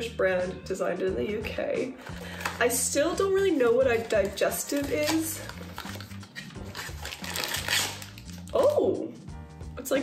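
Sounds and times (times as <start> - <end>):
soft background music: 0.0 - 10.0
paper packet rustling: 2.0 - 8.7
cardboard box tearing: 4.0 - 8.4.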